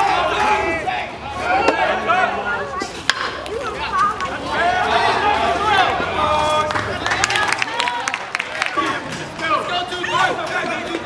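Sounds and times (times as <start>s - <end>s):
players and spectators shouting: 0.0s - 11.0s
bat cracking ball: 3.0s - 3.6s.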